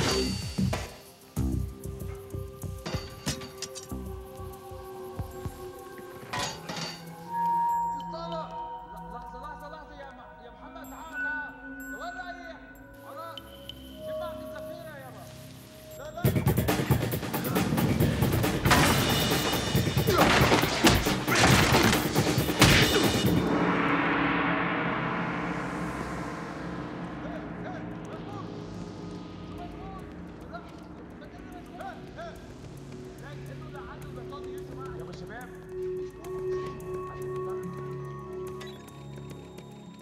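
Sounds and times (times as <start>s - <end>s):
film score: 0.0s - 40.0s.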